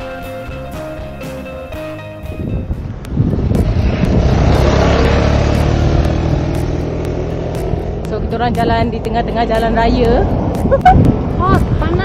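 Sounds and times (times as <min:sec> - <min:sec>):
guitar background music: 0:00.0 - 0:12.0
wind buffeting microphone: 0:02.2 - 0:12.0.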